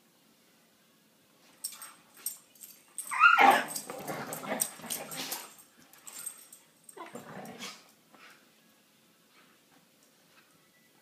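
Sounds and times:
dog yelping: 0:03.1 - 0:03.8
dogs growling: 0:03.4 - 0:05.6, 0:07.0 - 0:07.9.

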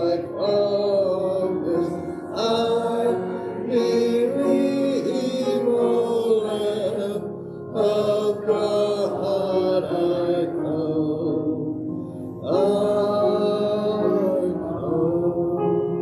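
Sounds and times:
man singing into a microphone: 0:00.0 - 0:11.8, 0:12.4 - 0:16.0
people singing a hymn a cappella: 0:00.0 - 0:16.0.

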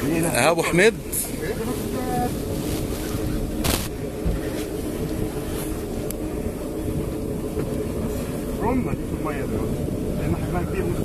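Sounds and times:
boat engine running: 0:00.0 - 0:11.0
sea noise: 0:00.0 - 0:11.0
wind: 0:00.0 - 0:11.0.

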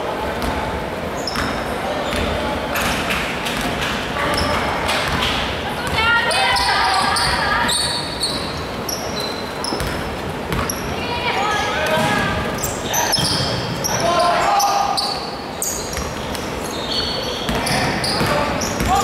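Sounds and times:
sneakers squeaking: 0:00.3 - 0:19.0
basketball bouncing on court: 0:00.4 - 0:11.0, 0:11.8 - 0:13.8, 0:15.9 - 0:16.5, 0:17.4 - 0:19.0
players calling out: 0:04.2 - 0:19.0.

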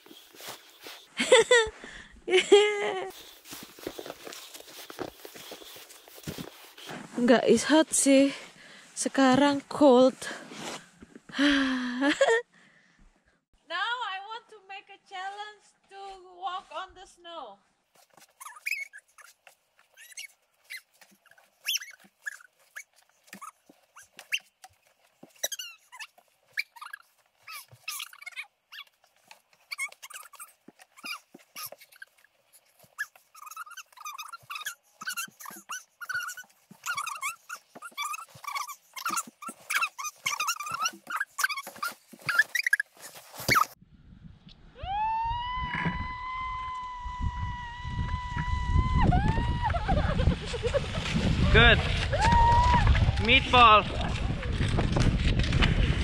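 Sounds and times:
footsteps crunching through snow: 0:00.0 - 0:01.6, 0:03.1 - 0:11.0, 0:37.6 - 0:43.8
low wind rumble: 0:43.8 - 0:56.0.

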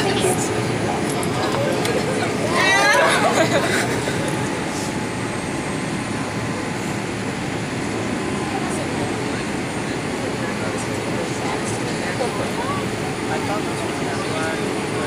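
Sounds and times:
aircraft cabin engine and airflow rush: 0:00.0 - 0:15.0.

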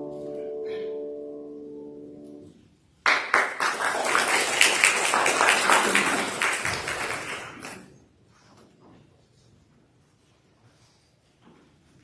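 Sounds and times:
sustained musical chord: 0:00.0 - 0:02.6
congregation applauding: 0:03.0 - 0:07.9.

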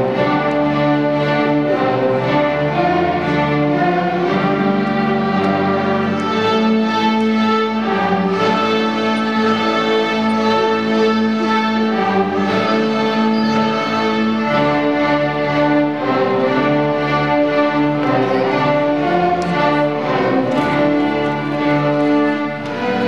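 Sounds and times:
string orchestra sustained notes: 0:00.0 - 0:23.0.

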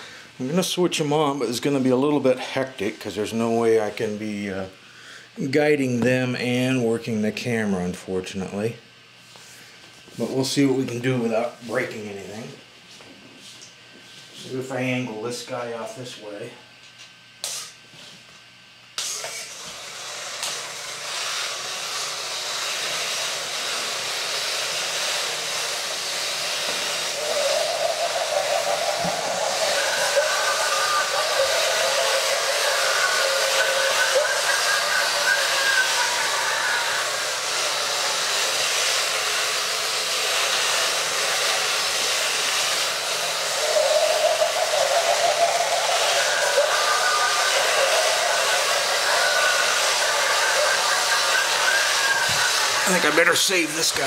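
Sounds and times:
warbling tone: 0:27.2 - 0:37.2, 0:43.6 - 0:53.3
toy robot motors whirring: 0:42.7 - 0:53.1.

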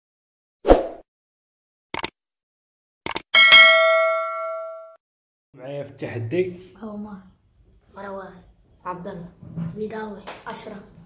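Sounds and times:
short clicks: 0:01.9 - 0:02.2, 0:03.0 - 0:03.3
bell chime: 0:03.4 - 0:05.0.

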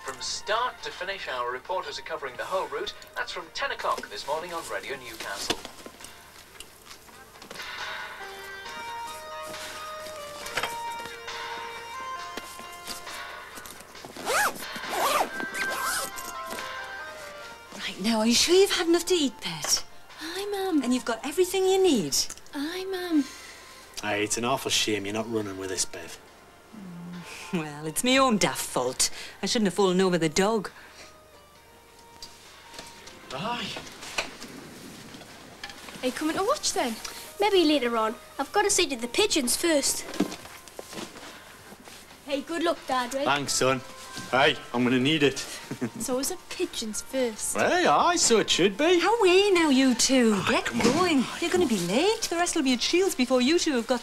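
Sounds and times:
soft footsteps on a floor: 0:08.3 - 0:14.3, 0:40.0 - 0:44.5
zip being pulled shut: 0:14.1 - 0:16.3.

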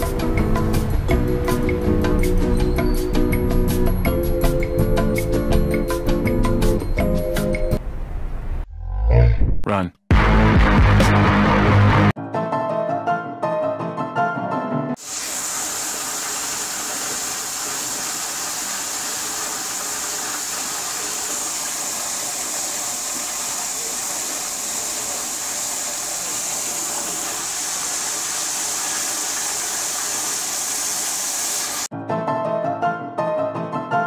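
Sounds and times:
toilet water rushing: 0:15.0 - 0:31.9.

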